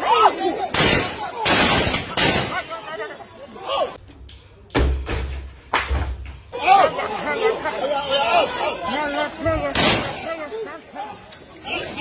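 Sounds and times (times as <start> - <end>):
voices talking and calling: 0.0 - 4.7, 6.4 - 12.0.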